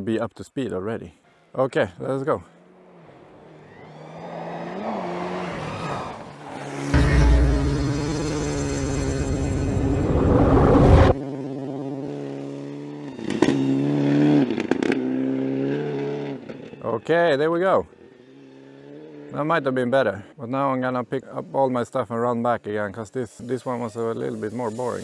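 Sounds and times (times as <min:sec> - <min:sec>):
rally car engine revving: 0:03.3 - 0:16.8
loud low rumble: 0:06.9 - 0:11.2.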